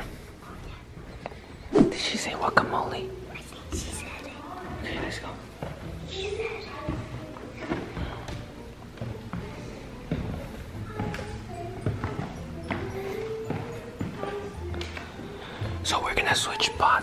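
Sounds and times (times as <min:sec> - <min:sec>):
background music: 0:00.0 - 0:17.0
whispering voices: 0:00.0 - 0:17.0.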